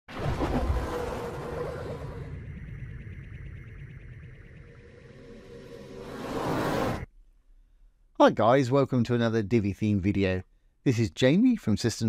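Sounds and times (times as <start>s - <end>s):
whoosh: 0.1s - 7.1s.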